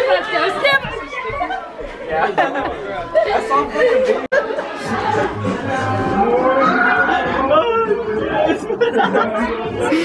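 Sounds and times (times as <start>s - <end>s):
group of people chattering: 0.0s - 10.0s.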